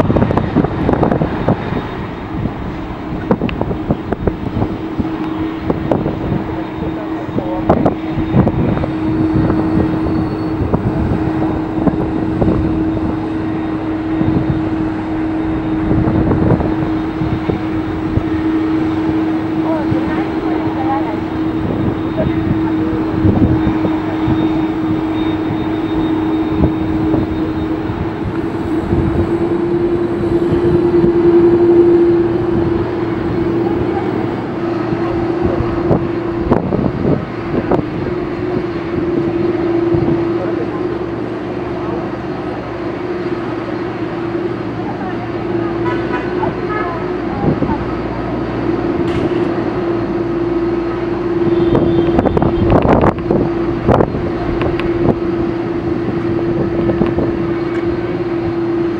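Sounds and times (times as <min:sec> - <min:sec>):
jet airliner taxiing: 0:00.0 - 0:58.9.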